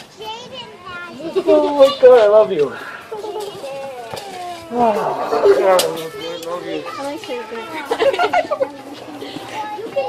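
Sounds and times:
young children's vocal sounds: 0.2s - 8.0s.

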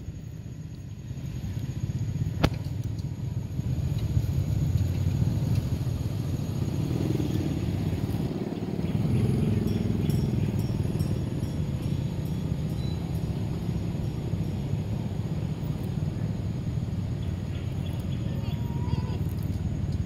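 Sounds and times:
motor vehicle rumbling: 0.0s - 20.0s.

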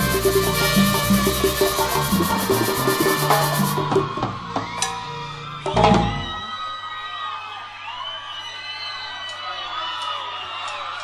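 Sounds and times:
sustained bending melody notes: 0.0s - 4.2s
cumbia band music: 0.0s - 4.6s
crowd cheering and whooping: 0.0s - 11.0s.

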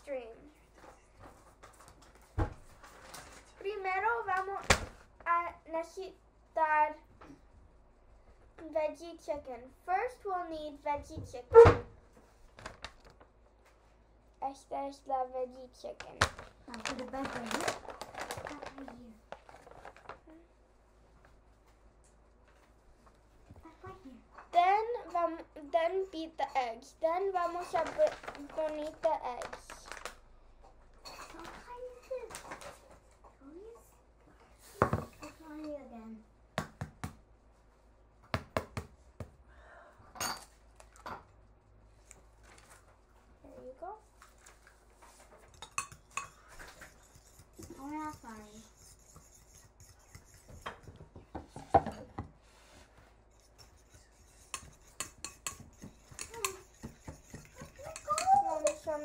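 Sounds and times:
fork beating eggs in a bowl: 26.2s - 29.4s, 45.1s - 52.0s, 53.3s - 59.0s.

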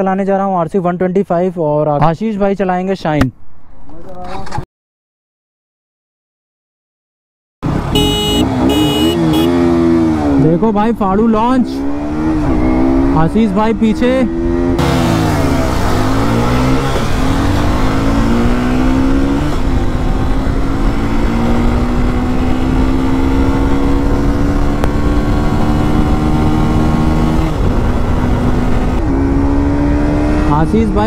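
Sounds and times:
motorcycle engine accelerating: 7.6s - 31.0s
wind rushing past microphone: 11.8s - 30.5s.

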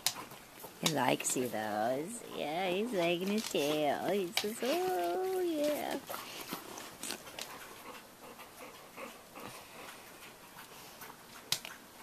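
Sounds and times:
dogs sniffing and snuffling: 0.0s - 12.0s.

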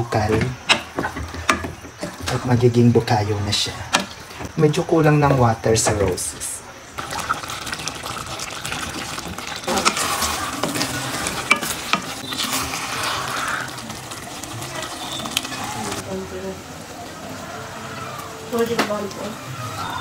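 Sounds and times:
soft sizzle: 0.0s - 20.0s
spoon stirring sticky mixture in pot: 7.7s - 16.0s.

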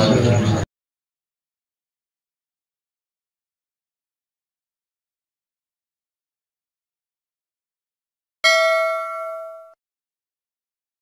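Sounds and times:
metallic bell ding: 8.4s - 9.8s.

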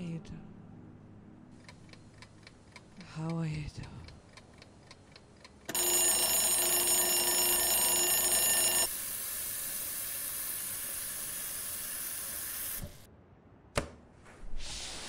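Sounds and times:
clock ticking: 1.6s - 5.8s
alarm clock ringing: 5.7s - 11.3s
water running from a tap: 9.0s - 12.8s.

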